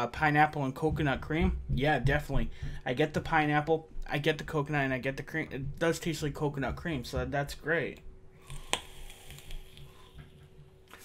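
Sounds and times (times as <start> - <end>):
e-cigarette coil crackle: 8.4 - 11.0.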